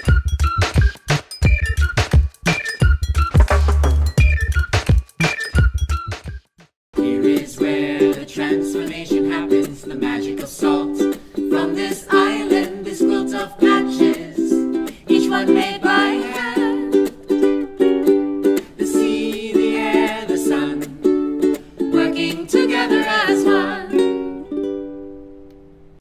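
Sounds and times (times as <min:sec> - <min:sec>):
ukulele music: 0:00.0 - 0:06.0, 0:07.0 - 0:26.0.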